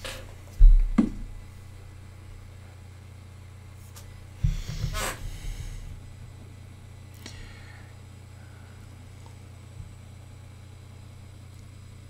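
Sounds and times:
low electrical hum: 0:00.0 - 0:12.0
breath close to microphone: 0:07.2 - 0:08.9.

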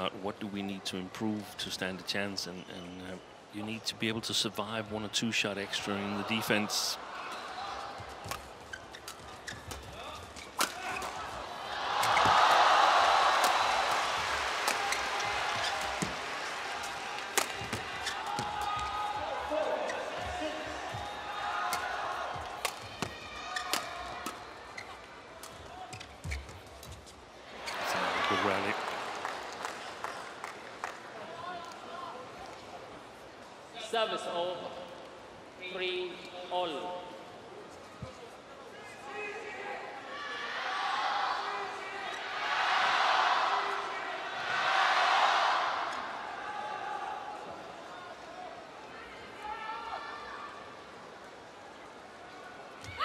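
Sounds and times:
shoe squeaks: 0:08.3 - 0:11.3, 0:14.8 - 0:16.1, 0:17.6 - 0:18.8, 0:19.5 - 0:21.2, 0:24.7 - 0:25.1, 0:25.8 - 0:27.8
crowd cheering: 0:10.9 - 0:24.4, 0:27.5 - 0:31.4, 0:42.3 - 0:47.4
racket hitting shuttlecock: 0:17.2 - 0:18.9.

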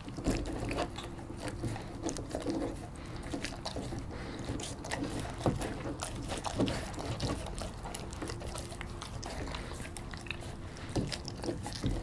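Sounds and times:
dog chewing with wet smacks: 0:00.0 - 0:12.0.

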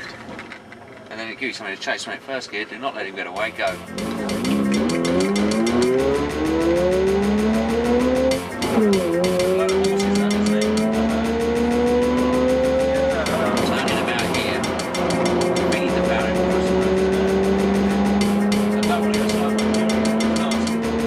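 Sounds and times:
car engine accelerating: 0:03.4 - 0:21.0.

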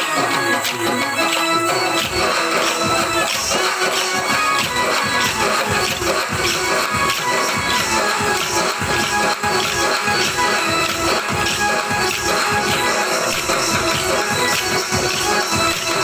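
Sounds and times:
drum: 0:00.0 - 0:16.0
electronic keyboard: 0:00.0 - 0:16.0
wooden sticks clacking: 0:00.3 - 0:16.0.

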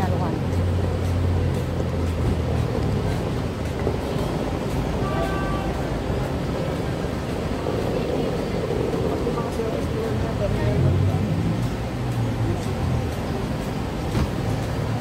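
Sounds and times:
bustle of people: 0:00.0 - 0:15.0
traffic and engines rumbling: 0:00.0 - 0:15.0
brief high tone: 0:05.0 - 0:05.9.

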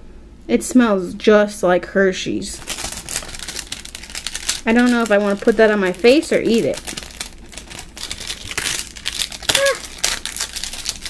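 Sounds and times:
cardboard and plastic film rustling: 0:02.6 - 0:11.0.

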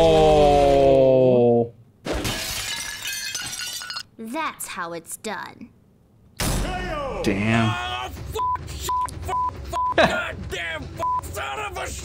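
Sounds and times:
shattering crash: 0:02.1 - 0:04.0
debris clinking: 0:02.1 - 0:04.1.

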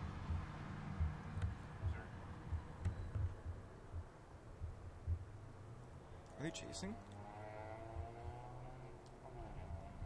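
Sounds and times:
low traffic rumble: 0:00.0 - 0:10.0
distant vehicle engine passing: 0:06.3 - 0:10.0.

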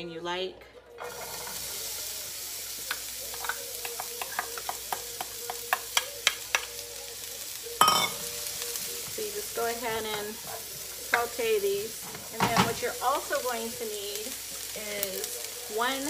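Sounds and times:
onion sizzling in a pan: 0:01.0 - 0:16.0
utensil clicking against pan: 0:02.8 - 0:06.8.

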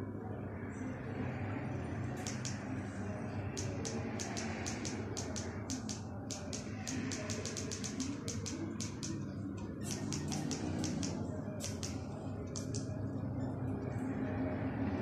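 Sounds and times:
steady low background hum: 0:00.0 - 0:15.0
remote control buttons clicking: 0:02.2 - 0:02.7, 0:03.6 - 0:12.9.

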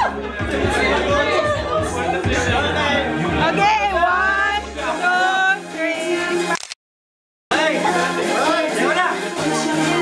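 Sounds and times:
music playing: 0:00.0 - 0:06.6, 0:07.5 - 0:10.0.

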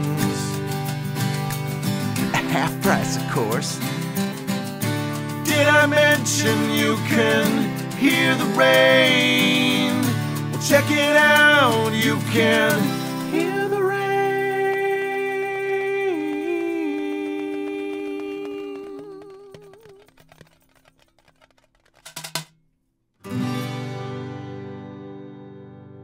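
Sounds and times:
acoustic guitar: 0:00.0 - 0:22.4, 0:23.2 - 0:26.0.

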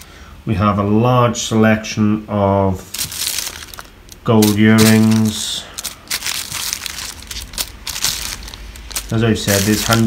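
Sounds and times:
plastic bags crinkling: 0:02.8 - 0:10.0.

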